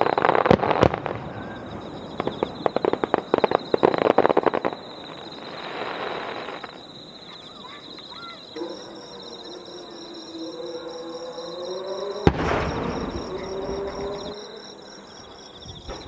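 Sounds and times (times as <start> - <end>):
firework bang with rolling echo: 0.0 - 6.8, 12.2 - 14.4
insects chirping: 0.0 - 16.0.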